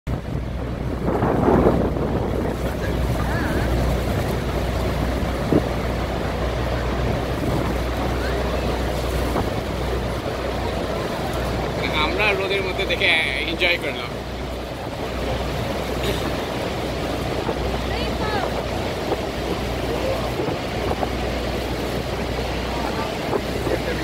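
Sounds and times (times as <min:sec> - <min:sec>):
wind on microphone: 0:00.1 - 0:11.9, 0:14.2 - 0:24.0
boat engine drone: 0:00.1 - 0:24.0
rushing water: 0:00.1 - 0:24.0.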